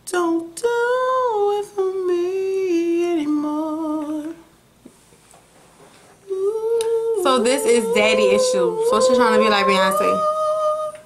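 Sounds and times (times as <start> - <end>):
person humming: 0.1 - 4.5, 6.2 - 11.0.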